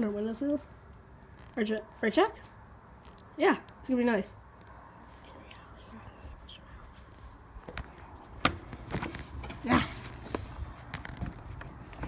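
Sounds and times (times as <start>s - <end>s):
faint low rumble: 0.0s - 8.3s.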